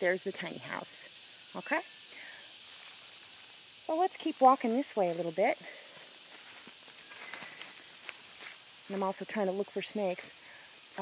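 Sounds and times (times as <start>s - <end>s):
insects chorus: 0.0s - 11.0s.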